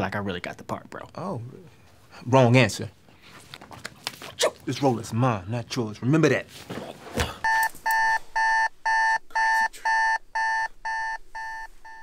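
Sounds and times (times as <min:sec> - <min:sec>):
electronic alarm beeping: 0:07.4 - 0:12.0.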